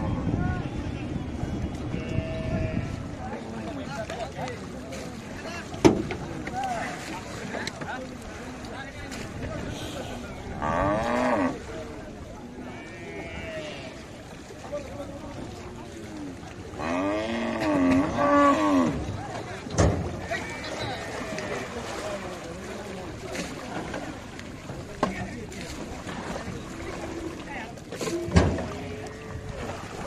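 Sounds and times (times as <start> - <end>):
wind noise: 0.0 - 3.3
men calling and talking: 0.0 - 30.0
water washing: 0.0 - 30.0.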